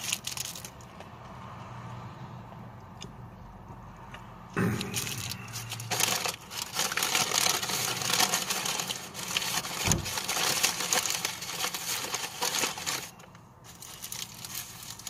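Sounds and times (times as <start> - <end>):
paper packaging crinkling: 0.0 - 0.9, 4.6 - 15.0.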